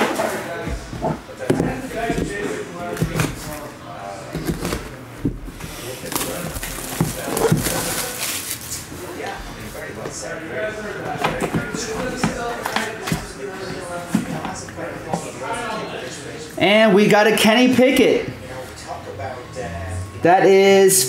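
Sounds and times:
plastic shrink wrap crinkling: 5.7 - 9.8.

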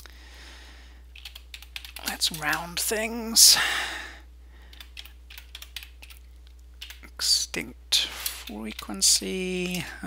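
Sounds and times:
faint low hum: 0.0 - 10.0
keyboard keystrokes: 1.2 - 2.6, 4.8 - 6.2.

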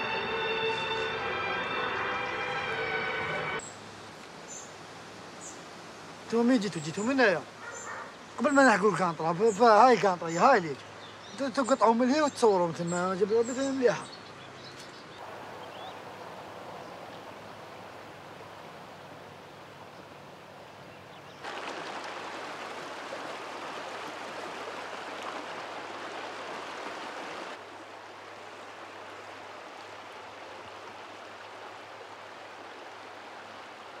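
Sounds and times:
river water over rocks: 3.6 - 34.0.

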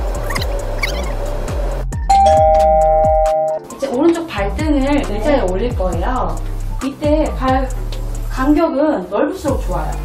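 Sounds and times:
background music with low beat: 0.0 - 8.6
two-tone ding-dong chime: 2.1 - 3.6.

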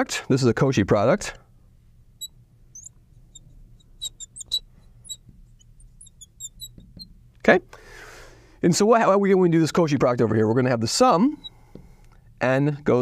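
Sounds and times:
marker squeaking on glass board: 2.2 - 7.3, 11.2 - 11.9.

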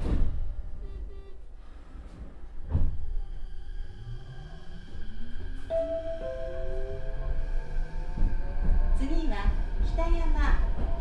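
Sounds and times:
train wheels rumbling on rails: 1.9 - 11.0.

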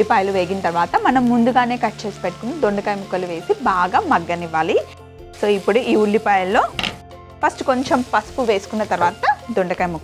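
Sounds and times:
woman speaking: 0.0 - 6.8
brief knock: 6.7 - 7.0.

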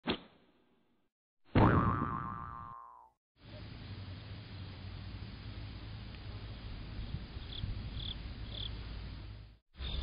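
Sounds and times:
cartoon boing sliding down: 1.6 - 3.1
outdoor background hiss: 3.4 - 10.0.

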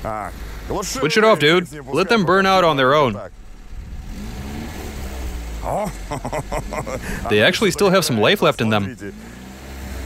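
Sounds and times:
car engine idling: 0.0 - 10.0
person speaking: 5.6 - 9.0.

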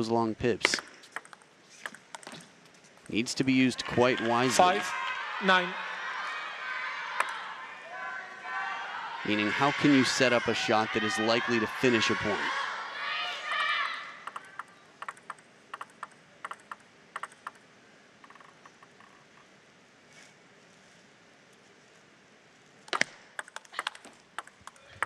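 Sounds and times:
table tennis ball bouncing: 0.6 - 3.2, 14.2 - 17.6, 22.9 - 25.0
table tennis rally clicks: 0.6 - 3.3, 14.2 - 17.6, 18.2 - 19.5, 22.8 - 25.0.

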